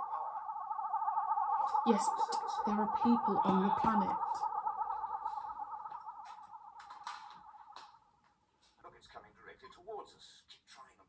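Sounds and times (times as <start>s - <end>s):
electronic warbling tone: 0.0s - 8.2s.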